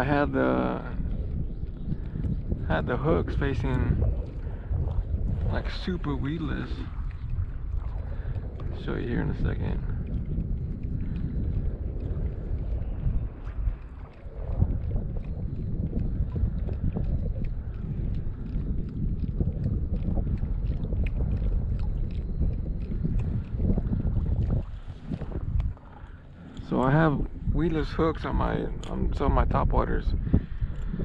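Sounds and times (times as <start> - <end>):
waves lapping against hull: 0.0 - 31.0
wind buffeting microphone: 0.0 - 31.0.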